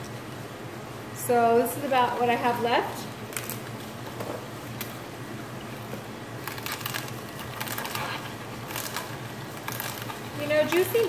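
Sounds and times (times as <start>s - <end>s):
juicer motor humming: 3.2s - 11.0s
celery crunching in juicer: 3.3s - 3.8s, 6.3s - 11.0s.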